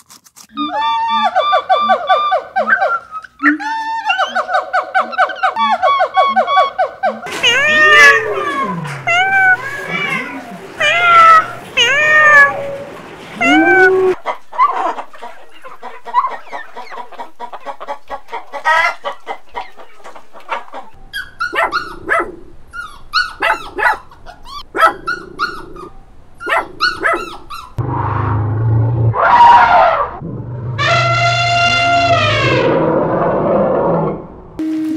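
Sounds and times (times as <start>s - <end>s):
arching pitched animal calls: 4.2s - 14.2s, 21.2s - 33.8s
loud rising animal call: 7.2s - 14.2s, 27.8s - 34.4s
chicken clucks and clicks: 14.2s - 22.2s.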